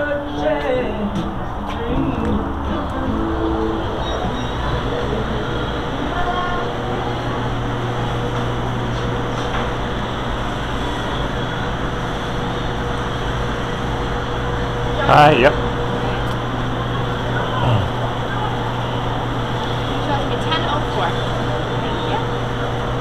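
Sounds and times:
cooling equipment hum: 0.0 - 23.0.

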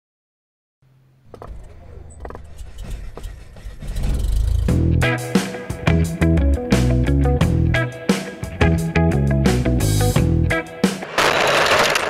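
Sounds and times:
plane wheels rumbling on dirt: 1.3 - 5.0.

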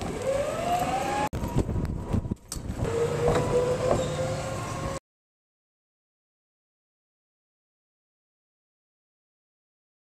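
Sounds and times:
golf cart motor whine: 0.0 - 5.0
low rumble of cart driving: 0.0 - 5.0.

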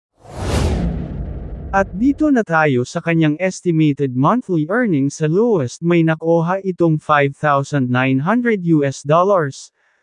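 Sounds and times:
whoosh swish into low rumble: 0.2 - 2.4.

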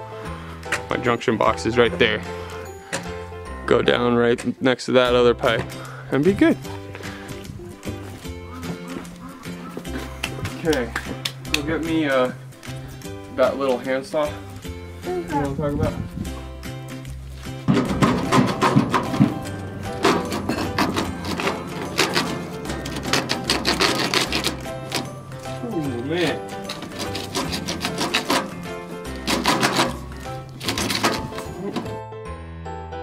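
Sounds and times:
background music with beat: 5.4 - 32.8
digging in dry soil: 19.9 - 31.9.

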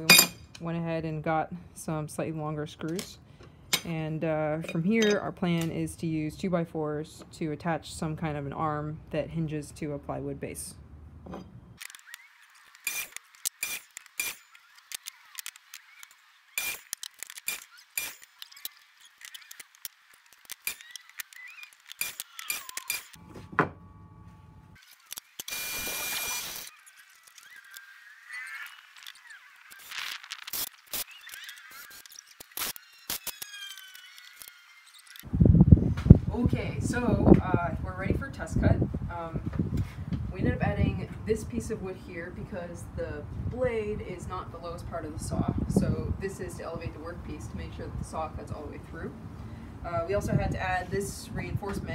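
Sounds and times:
wood and tools clattering: 0.0 - 0.6
power tool burst: 11.8 - 19.8, 20.5 - 23.2, 24.9 - 26.8, 29.7 - 35.0.

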